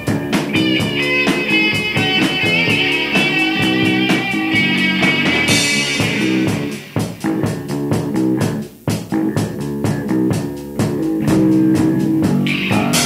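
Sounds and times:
bass guitar: 0.0 - 13.0
drum kit beat: 0.0 - 13.0
electric guitar: 0.0 - 13.0.

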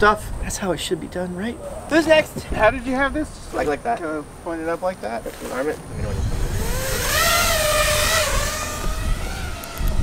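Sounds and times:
quadcopter motors whining: 5.9 - 10.0.

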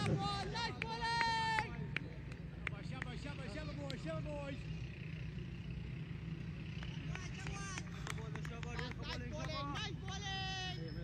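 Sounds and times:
people calling across a field: 6.4 - 11.0.

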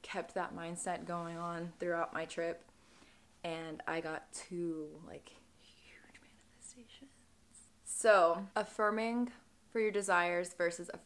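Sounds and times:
woman breathing in: 2.7 - 3.3.

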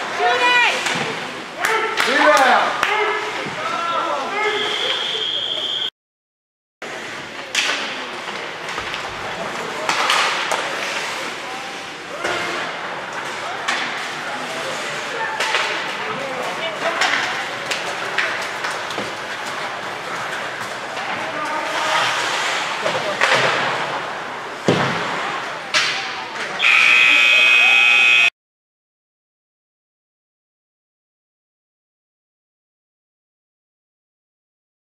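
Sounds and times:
scoreboard buzzer: 26.6 - 28.3.

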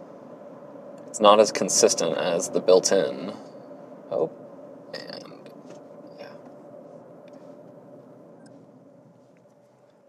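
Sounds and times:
road and tyre rumble in car: 3.8 - 10.0.

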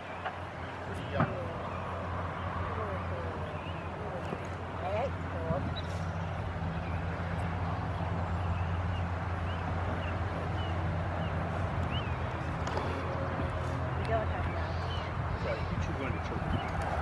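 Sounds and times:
low engine hum: 0.0 - 17.0.

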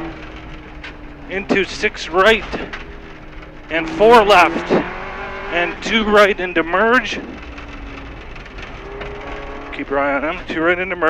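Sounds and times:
tyre and gravel rush: 0.0 - 11.0.

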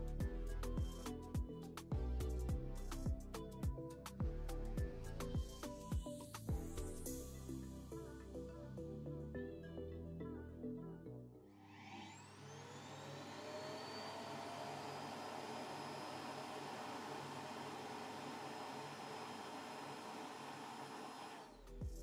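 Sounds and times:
suction motor whirring: 11.6 - 21.7.

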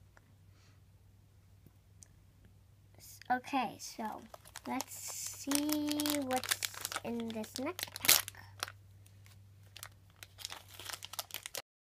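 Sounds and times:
foil bag crinkling: 4.0 - 11.6.

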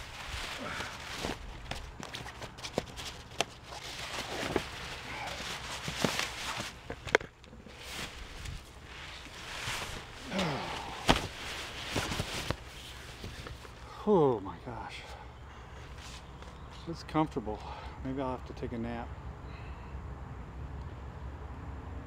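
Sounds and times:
rustling and handling noise: 0.0 - 14.0, 15.8 - 16.9.

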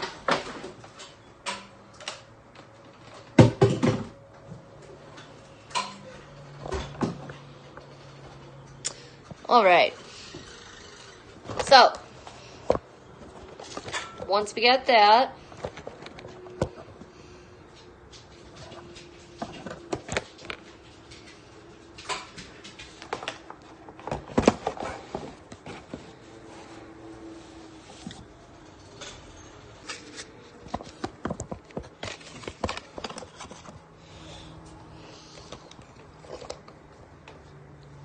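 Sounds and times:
kitchen things knocking and clattering: 3.1 - 4.3, 13.6 - 14.3.

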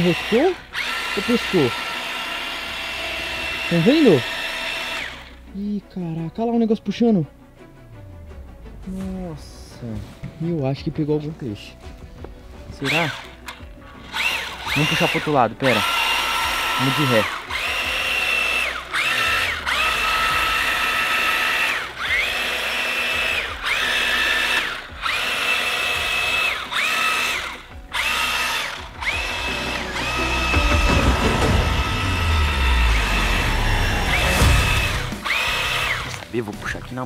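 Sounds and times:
toy electric motor whining: 0.0 - 5.4, 12.8 - 36.4
low rumble: 29.0 - 36.0.

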